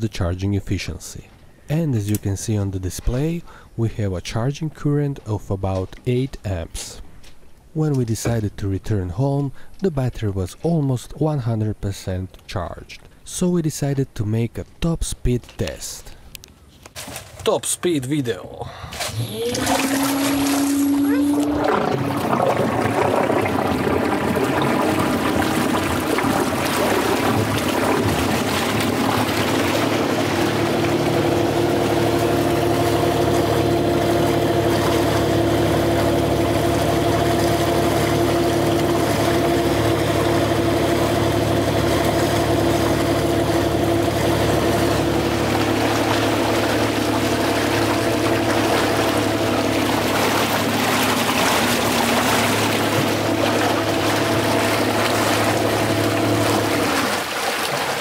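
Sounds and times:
water rushing past hull: 18.9s - 58.0s
electric boat motor humming: 19.0s - 57.3s.

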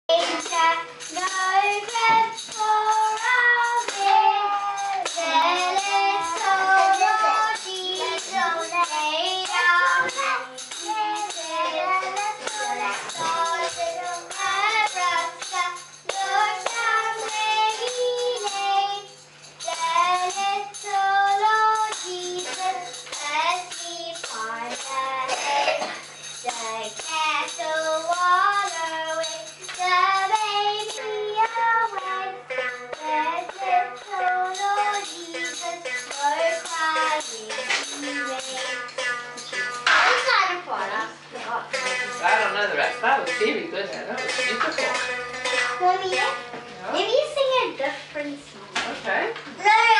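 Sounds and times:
girl singing: 0.1s - 42.3s, 49.6s - 49.9s
tambourine shaking: 0.1s - 48.1s.

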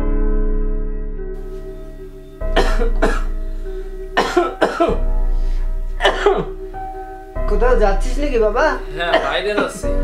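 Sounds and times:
soft keyboard music: 0.0s - 10.0s
person coughing: 2.5s - 3.4s, 4.2s - 5.1s, 6.0s - 6.6s, 9.0s - 9.9s.

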